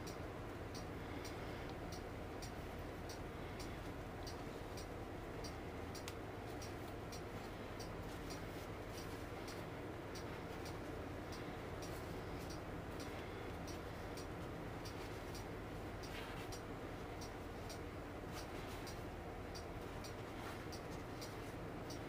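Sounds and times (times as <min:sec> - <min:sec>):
faint regular ticking: 0:00.0 - 0:22.0
low steady hum: 0:00.0 - 0:22.0.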